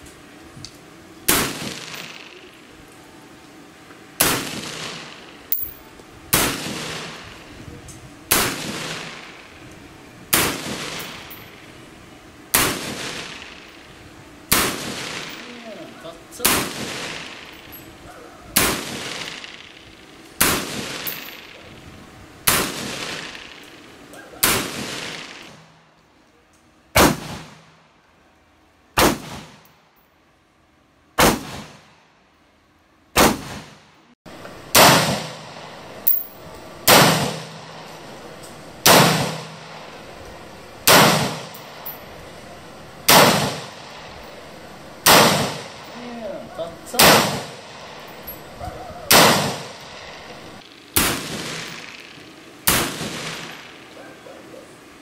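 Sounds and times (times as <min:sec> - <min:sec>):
rifle single shots echoing: 0:34.5 - 0:53.9.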